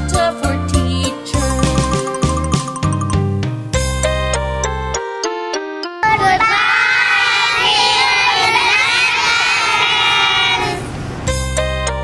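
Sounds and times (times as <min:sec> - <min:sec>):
keyboard music: 0:00.0 - 0:06.6
children calling out together: 0:06.0 - 0:10.8.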